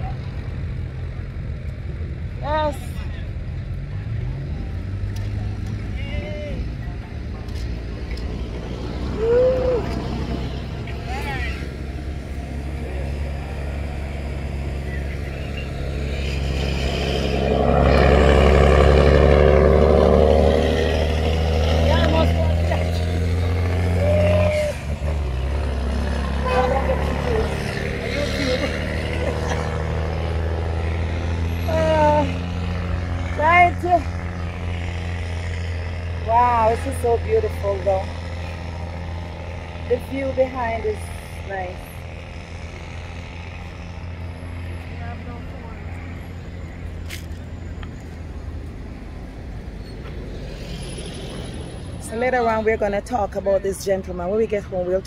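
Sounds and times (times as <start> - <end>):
motor vehicle passing: 0.0 - 55.0
road traffic rumble: 0.0 - 55.0
voices calling: 9.1 - 17.7, 21.7 - 34.3.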